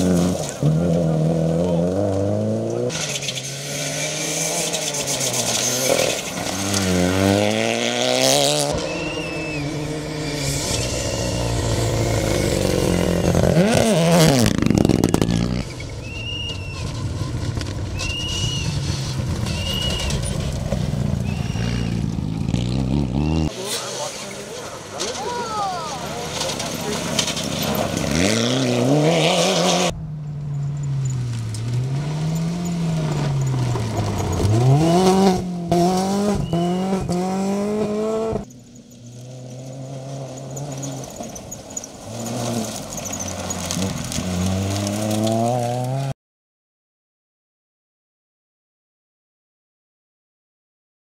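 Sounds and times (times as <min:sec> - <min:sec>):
rally car engines revving: 0:00.0 - 0:46.1
gravel thrown from tyres: 0:14.2 - 0:21.6, 0:39.0 - 0:46.1.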